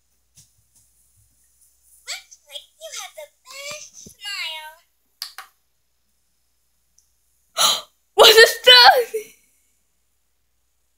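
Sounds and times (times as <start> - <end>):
child's high-pitched vocal sounds: 2.1 - 4.7.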